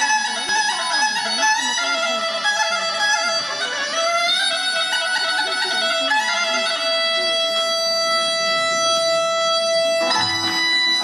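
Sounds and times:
folk dance music with reed instrument: 9.4s - 11.0s.

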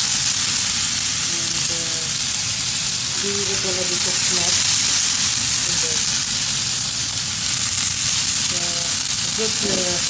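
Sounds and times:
meat sizzling in a grill pan: 0.0s - 10.0s.

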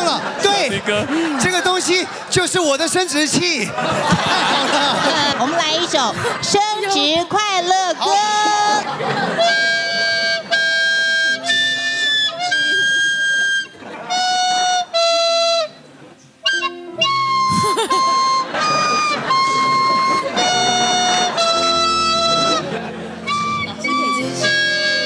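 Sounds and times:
recorder playing a simple tune: 8.2s - 25.0s.

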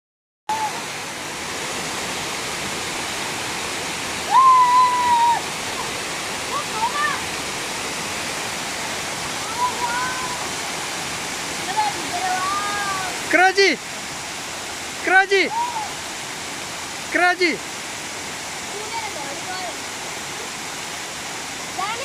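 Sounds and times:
waterfall splashing: 0.5s - 22.0s
child crying out: 4.3s - 5.5s, 15.5s - 16.0s.

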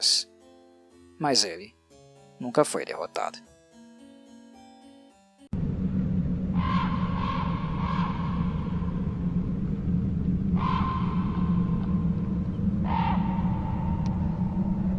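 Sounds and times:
steady low rumble: 5.5s - 14.9s
crow cawing: 6.6s - 8.8s, 10.6s - 11.7s, 12.8s - 13.9s.

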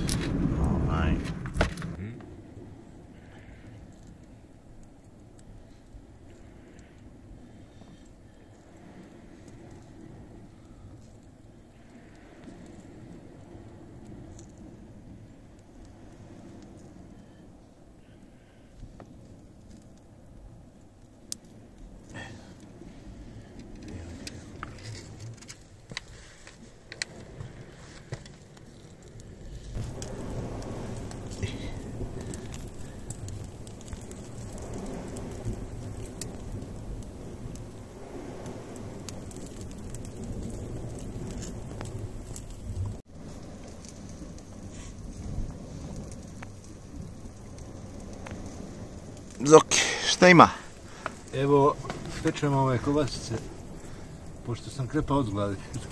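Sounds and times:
embers crackling and popping: 0.0s - 55.9s
steady low rumble: 0.0s - 55.9s.

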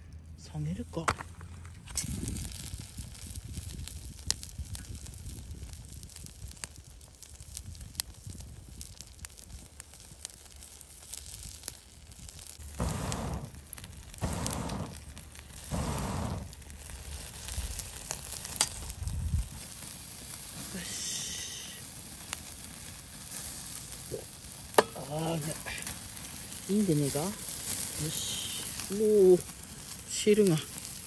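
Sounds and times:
fire crackling and popping: 0.1s - 31.0s
meat sizzling on a grill: 2.0s - 31.0s.

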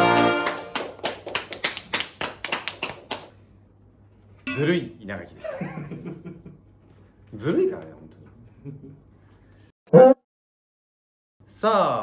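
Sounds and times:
quick hand clapping: 0.0s - 3.3s
sustained musical chord: 4.5s - 5.0s.

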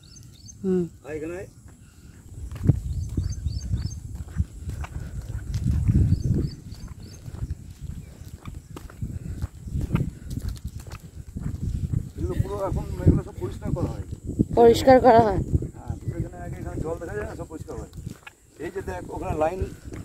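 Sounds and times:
faint bird chirps: 0.0s - 4.1s
wind buffeting microphone: 0.0s - 20.0s
footsteps on concrete: 1.6s - 20.0s.

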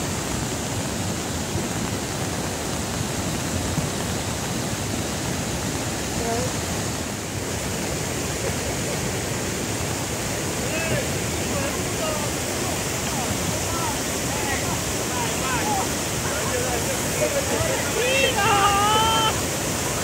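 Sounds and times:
river water rushing over stones: 0.0s - 20.0s.

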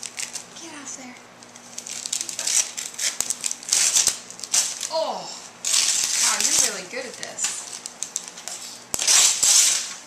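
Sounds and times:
paper rustling and crinkling: 1.6s - 5.0s.

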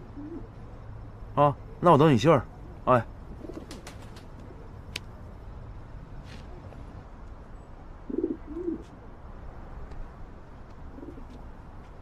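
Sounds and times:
pigeons cooing: 0.0s - 0.5s, 8.1s - 8.9s.

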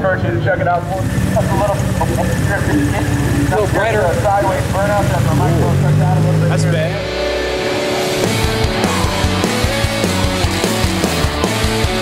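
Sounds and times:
car engine droning: 0.0s - 12.0s
rock music with held notes: 0.0s - 12.0s.

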